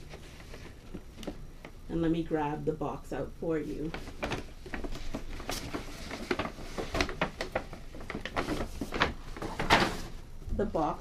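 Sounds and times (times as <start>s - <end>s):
paper bag rustling and crinkling: 0.0s - 1.7s, 3.7s - 11.0s.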